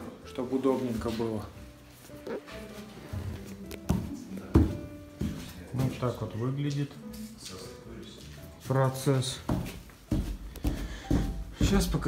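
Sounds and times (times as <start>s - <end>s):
background music with held tones: 0.0s - 12.0s.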